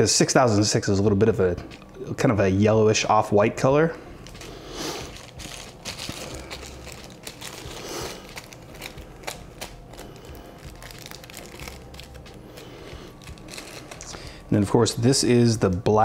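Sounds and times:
plastic packets crinkling: 4.2s - 15.1s.

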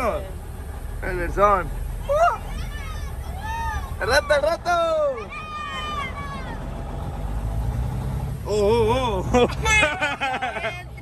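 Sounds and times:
truck diesel engine rumble: 0.0s - 11.0s.

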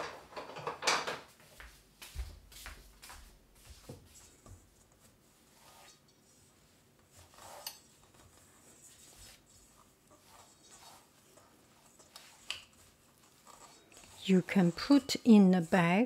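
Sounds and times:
spatula scraping metal bowl: 7.1s - 15.9s.

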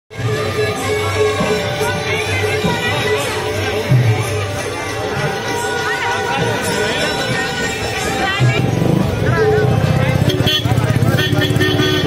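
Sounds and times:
crowd chatter: 0.1s - 12.0s
music playing: 0.1s - 12.0s.

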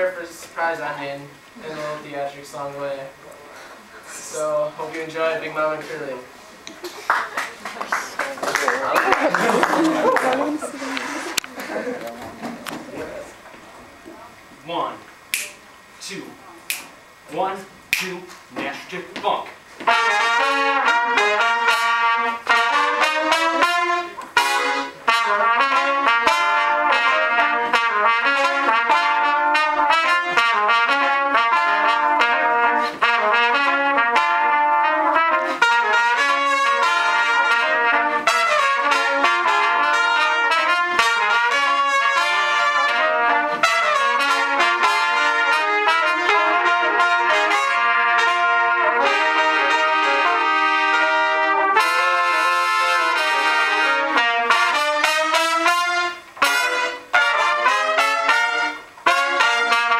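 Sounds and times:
trumpets playing in harmony: 19.7s - 59.9s.

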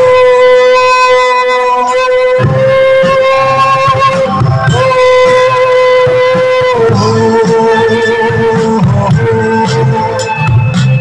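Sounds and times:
high held note: 0.0s - 11.0s
live band music: 0.0s - 11.0s.

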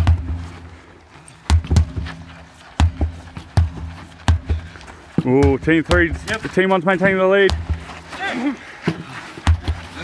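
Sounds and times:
sledgehammer thuds on rubber tyre: 0.0s - 0.7s, 1.4s - 8.1s, 8.8s - 10.0s.

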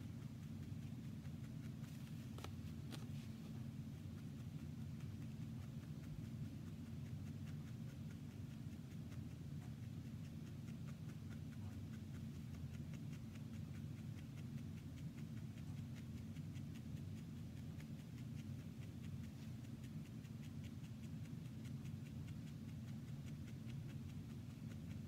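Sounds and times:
felting needle soft ticks: 0.0s - 25.0s
steady low hum: 0.0s - 25.0s.

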